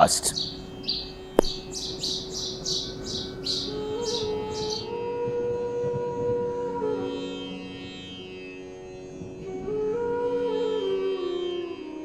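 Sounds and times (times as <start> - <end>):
small bird chirping: 0.0 - 4.9
sitar drone: 0.0 - 12.0
sharp knock: 1.4 - 1.7.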